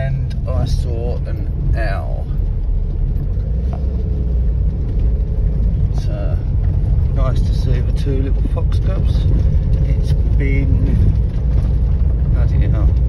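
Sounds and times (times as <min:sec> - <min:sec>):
car rumbling on rough track: 0:00.0 - 0:13.0.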